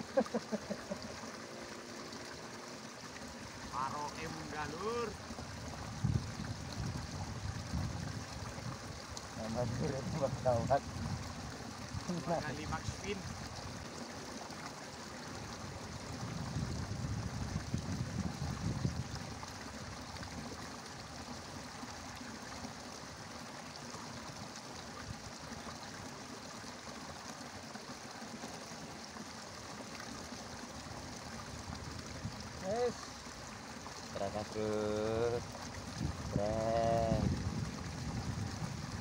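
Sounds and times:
water trickling in ditch: 0.0s - 39.0s.

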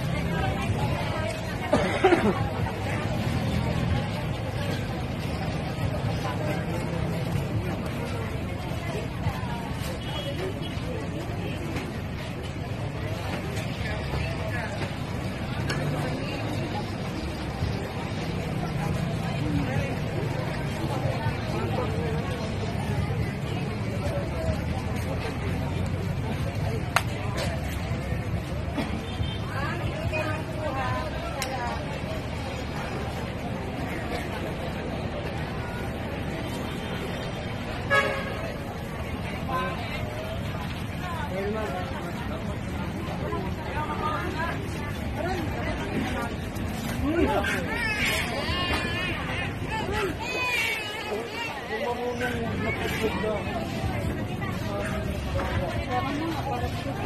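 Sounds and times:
indistinct voices chattering: 0.0s - 57.0s.

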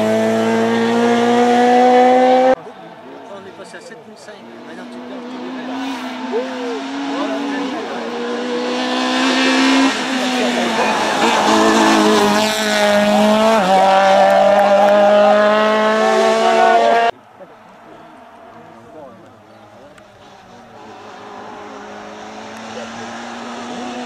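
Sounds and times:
rally car engine at high revs: 0.0s - 2.6s, 4.4s - 17.1s, 19.5s - 24.0s.

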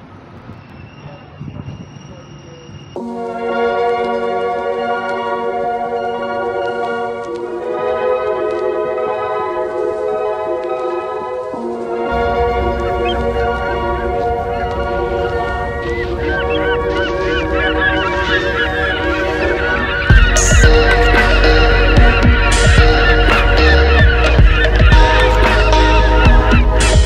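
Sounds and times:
flock of birds calling: 0.6s - 27.0s
background music with heavy beat: 19.6s - 27.0s.

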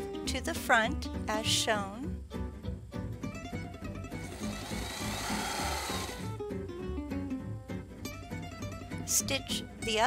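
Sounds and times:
plucked-string music: 0.0s - 10.0s
sewing machine whirring: 4.2s - 6.3s.

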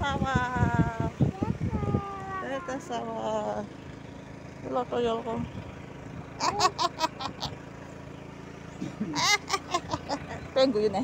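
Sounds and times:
small motorbike engine running: 0.0s - 11.0s.

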